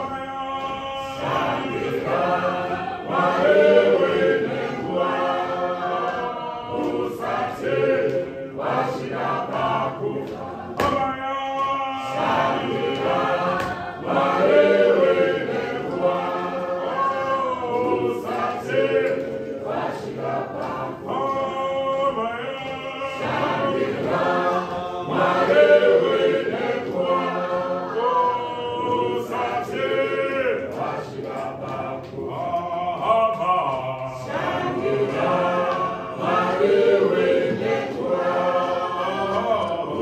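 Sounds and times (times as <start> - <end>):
church choir singing a hymn: 0.0 - 40.0.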